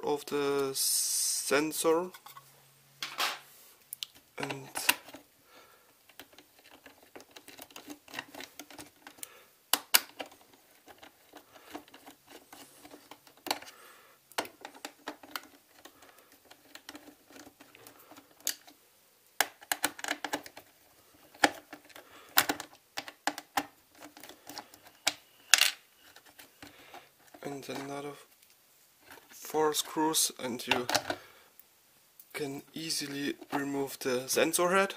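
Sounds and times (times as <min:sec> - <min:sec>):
plastic parts clicking and rattling: 0:04.1 - 0:05.3, 0:06.0 - 0:18.8, 0:19.4 - 0:29.9, 0:30.6 - 0:31.2, 0:32.9 - 0:34.0.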